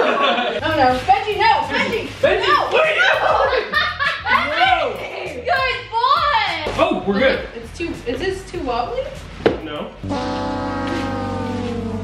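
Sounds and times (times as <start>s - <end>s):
comic horn sliding downward: 10.0s - 12.0s.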